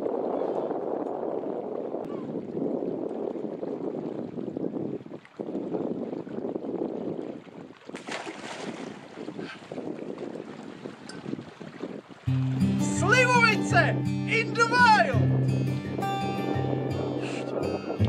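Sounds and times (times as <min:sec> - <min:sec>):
wind buffeting microphone: 0:00.0 - 0:18.0
person wading in water: 0:02.1 - 0:12.8, 0:16.0 - 0:18.0.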